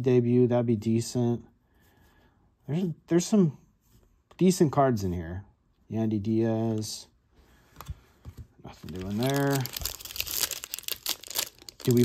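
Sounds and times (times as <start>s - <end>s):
foil wrapper crinkling and tearing: 8.8s - 12.0s.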